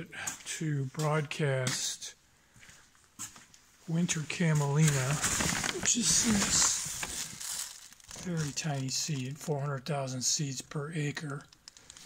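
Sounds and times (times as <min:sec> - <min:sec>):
paper seed bag rustling: 0:04.4 - 0:09.5.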